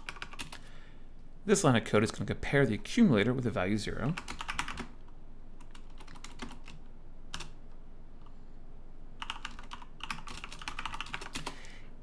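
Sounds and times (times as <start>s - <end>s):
typing on computer keyboard: 0.0s - 0.6s, 4.2s - 4.9s, 5.6s - 7.6s, 9.2s - 11.6s.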